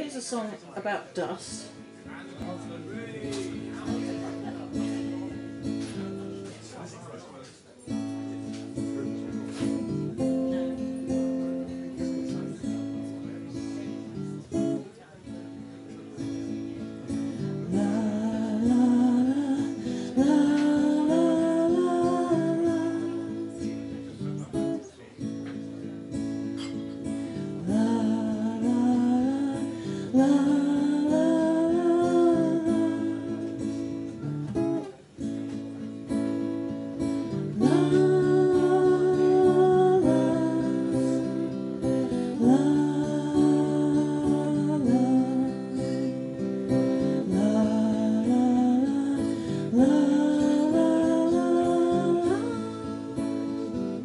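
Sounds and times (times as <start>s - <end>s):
acoustic guitar playing: 0.0s - 54.0s
person singing long notes: 27.6s - 33.8s, 37.4s - 54.0s.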